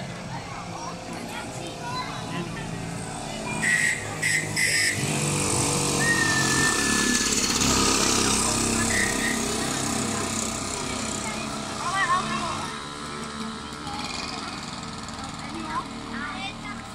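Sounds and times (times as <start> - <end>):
moped engines racing past: 0.0 - 16.9
sharp high-pitched bursts: 3.4 - 12.3
thin whistle-like tone: 3.5 - 5.1, 5.9 - 7.4, 8.8 - 9.5.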